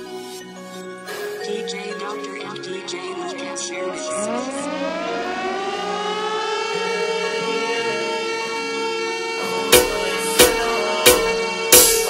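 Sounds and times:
faint musical backing: 0.0s - 12.0s
wailing siren tone rising: 3.9s - 12.0s.

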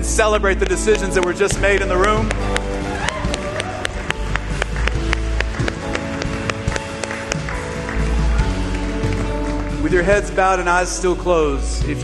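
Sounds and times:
live band with keyboard and guitar: 0.0s - 12.0s
sharp claps: 0.6s - 10.0s.

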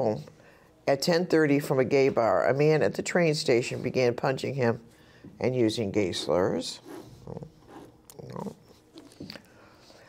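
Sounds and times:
person breathing and throat sounds: 6.8s - 10.0s.

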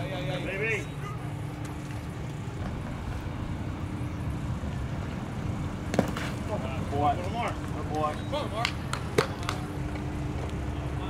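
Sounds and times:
faint steady hum: 0.0s - 11.0s
steady low rumble: 0.0s - 11.0s.

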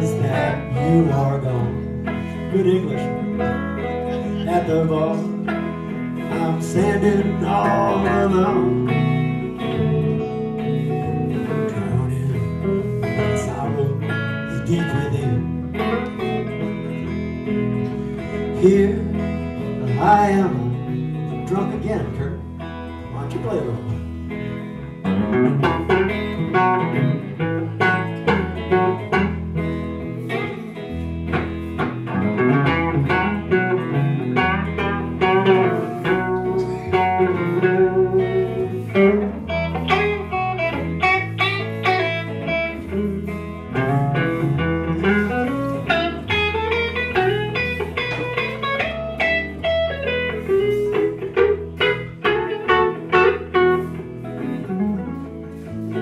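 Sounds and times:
bass guitar: 0.0s - 56.0s
electric guitar: 0.0s - 56.0s
lead guitar solo: 0.0s - 56.0s.

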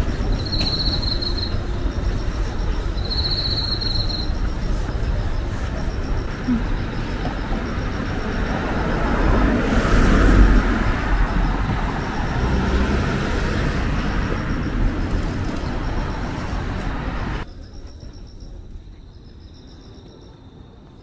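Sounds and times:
car passing: 0.0s - 17.4s
city street traffic: 0.0s - 21.0s.

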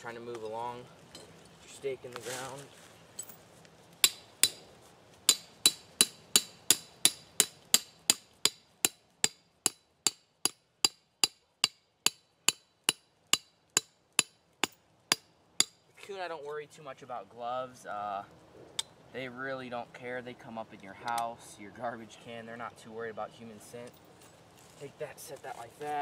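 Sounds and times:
hammer striking metal stake: 4.0s - 4.6s, 5.3s - 15.8s.

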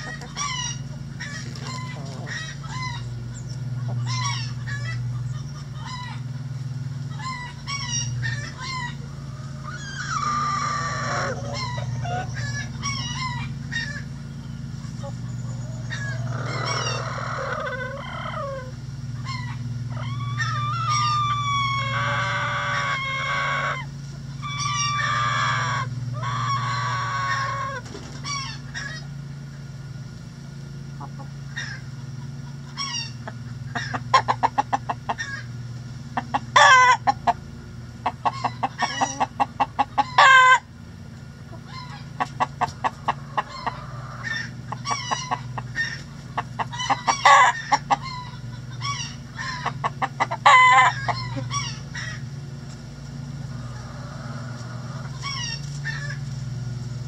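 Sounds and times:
chickens clucking: 0.0s - 29.7s, 30.6s - 57.0s
steady low hum: 0.0s - 57.0s
rooster crowing: 8.6s - 13.8s, 15.6s - 27.8s.

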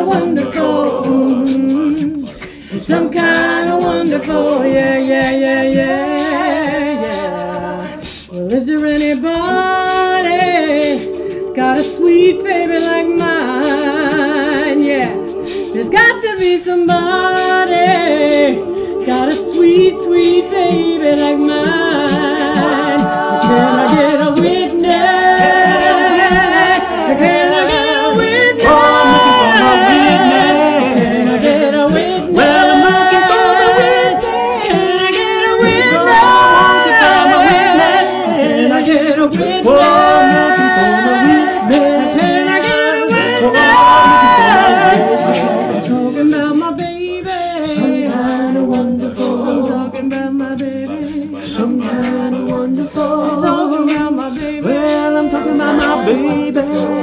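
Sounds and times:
a cappella group singing harmony: 0.0s - 57.0s.

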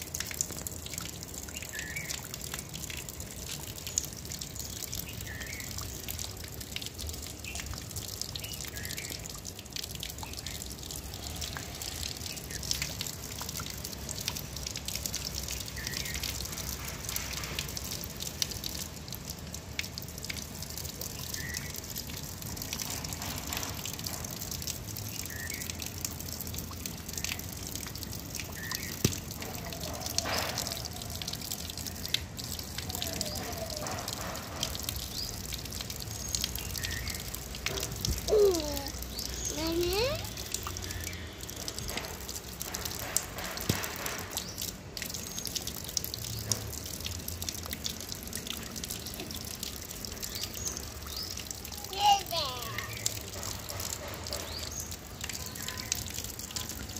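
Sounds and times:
tap water splashing on stone: 0.0s - 56.9s
water drips: 0.0s - 56.9s.

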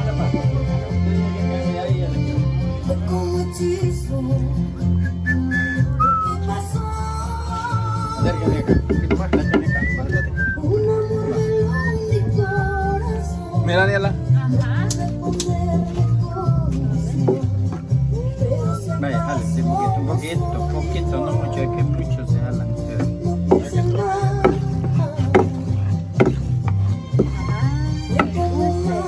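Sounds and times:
background music with bass line: 0.0s - 29.0s.

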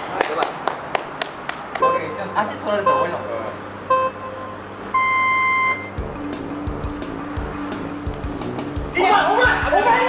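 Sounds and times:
electronic beep: 3.9s - 6.0s
background music with steady beat: 3.9s - 10.0s.

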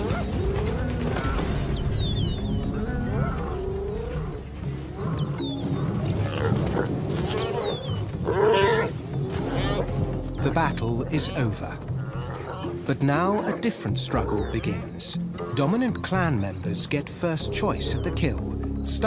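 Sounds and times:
hyenas calling and growling: 0.0s - 16.5s, 17.2s - 19.0s
background music: 0.0s - 19.0s.

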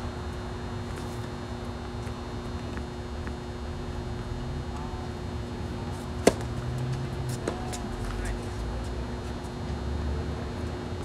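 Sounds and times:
steady low hum: 0.0s - 11.0s
tennis racket hitting ball: 6.2s - 6.5s.

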